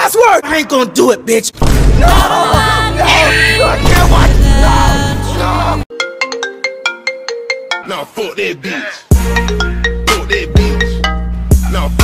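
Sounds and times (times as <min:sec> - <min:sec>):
mobile phone ringtone: 0:05.9 - 0:08.0.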